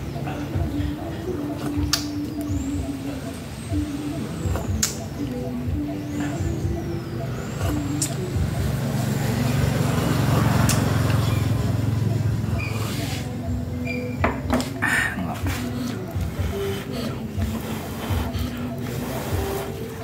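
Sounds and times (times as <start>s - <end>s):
vehicle engine passing: 6.8s - 14.1s.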